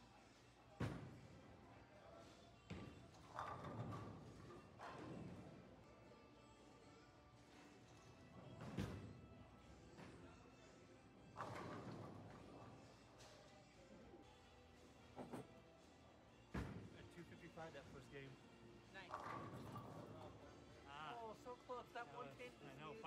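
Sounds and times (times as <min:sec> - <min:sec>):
quiet background music: 0:00.0 - 0:23.0.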